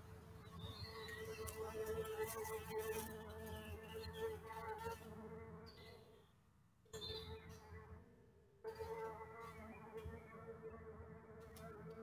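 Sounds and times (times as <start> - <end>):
faint insect buzz: 0.8 - 5.2.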